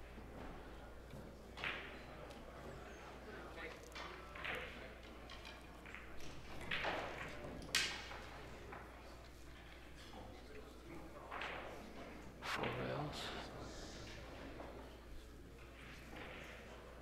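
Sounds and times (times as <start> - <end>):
faint indistinct voices: 0.1 - 17.0.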